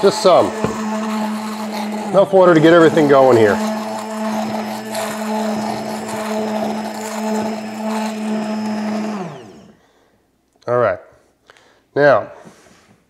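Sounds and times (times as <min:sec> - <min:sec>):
immersion blender running: 0:00.0 - 0:09.8
motor winding down: 0:00.0 - 0:09.8.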